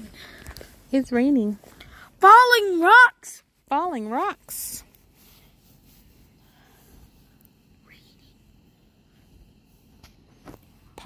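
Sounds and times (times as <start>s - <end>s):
faint low rumble: 3.4s - 11.0s.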